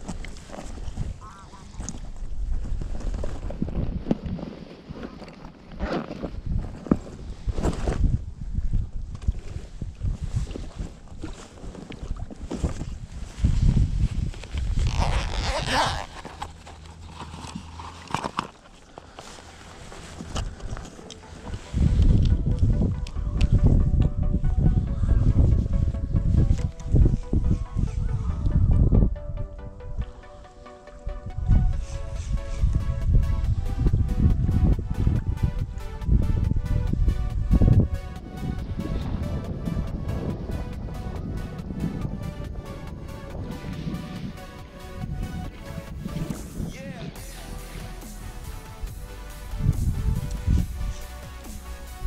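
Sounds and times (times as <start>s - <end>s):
wind on microphone: 0.0s - 18.2s, 19.2s - 30.3s, 31.0s - 52.0s
footsteps through dry grass: 12.4s - 22.8s
background music: 19.6s - 52.0s.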